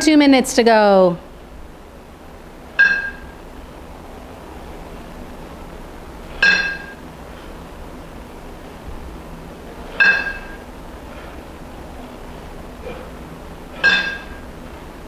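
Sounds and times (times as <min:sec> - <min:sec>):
kettlebells clinking: 0:02.8 - 0:03.4, 0:06.3 - 0:07.0, 0:09.8 - 0:11.3, 0:13.7 - 0:14.5.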